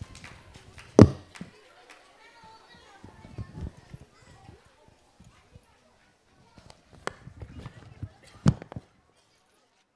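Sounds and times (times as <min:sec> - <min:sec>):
faint voices: 0:00.0 - 0:09.9
knocks and thumps: 0:01.0 - 0:01.4.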